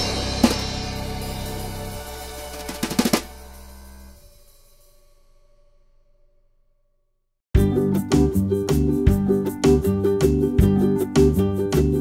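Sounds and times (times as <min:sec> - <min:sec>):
background music: 0:00.0 - 0:04.2, 0:07.6 - 0:12.0
drum and cymbal hit: 0:00.0 - 0:05.4.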